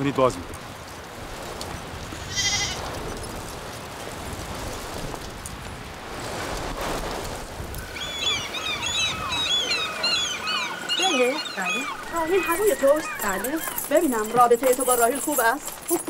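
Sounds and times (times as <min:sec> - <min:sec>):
sheep or goat bleating: 0:02.2 - 0:02.8.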